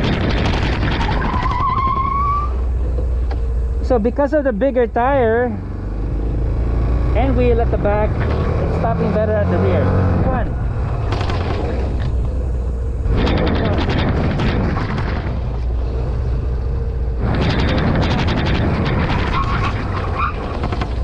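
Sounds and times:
wind buffeting microphone: 0.0 - 3.4, 5.1 - 21.0
scooter engine low rumble: 0.0 - 21.0.

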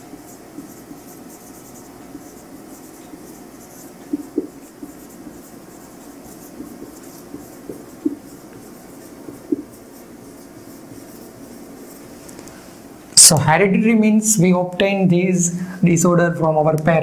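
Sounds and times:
marker scratching on whiteboard: 0.0 - 12.2.

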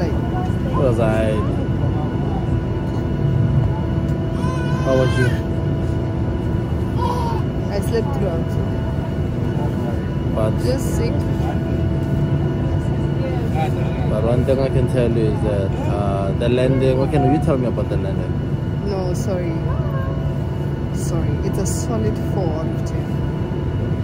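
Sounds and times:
aircraft low rumble: 0.0 - 24.0
constant hum: 0.0 - 24.0.

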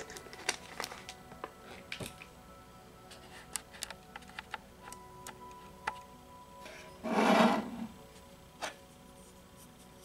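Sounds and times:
soft meditation music: 0.0 - 10.0
ceramic bowl scraping on table: 7.0 - 8.0.

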